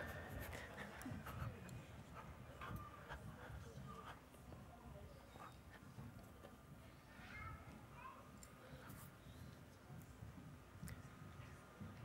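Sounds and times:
faint high children's voices: 0:00.5 - 0:12.0.

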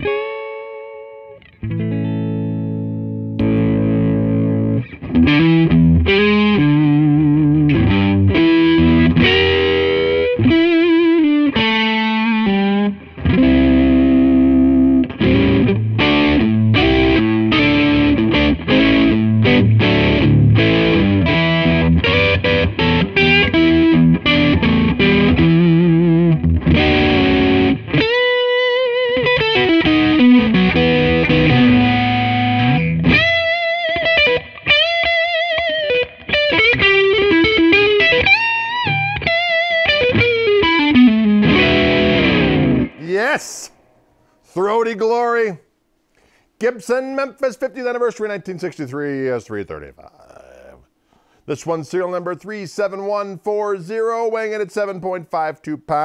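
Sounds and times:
overdriven electric guitar: 0:00.0 - 0:44.3.

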